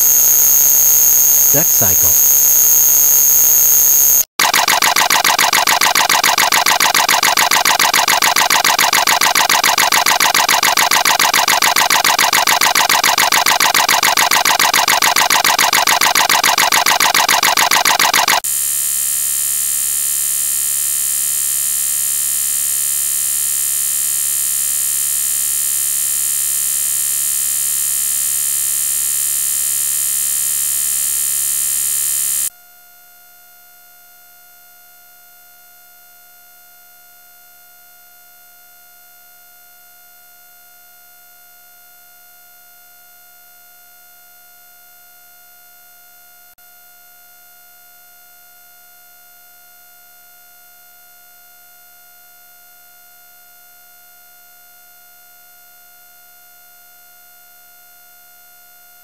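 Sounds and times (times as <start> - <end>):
electronic buzzing tone: 0.0 - 32.5.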